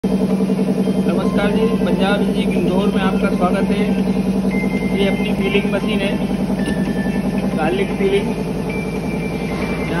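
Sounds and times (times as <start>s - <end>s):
pulsing machine drone: 0.0s - 10.0s
man speaking: 1.1s - 4.2s, 4.9s - 6.4s, 7.4s - 8.4s.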